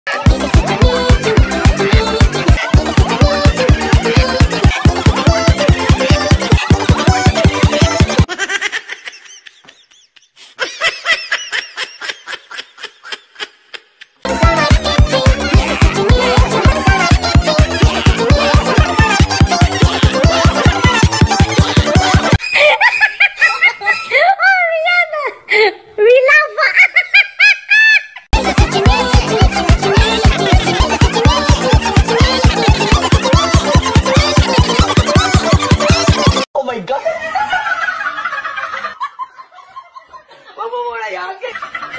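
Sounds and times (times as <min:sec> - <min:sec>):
high-pitched giggling laughter: 0:00.1 - 0:24.6, 0:26.3 - 0:36.4.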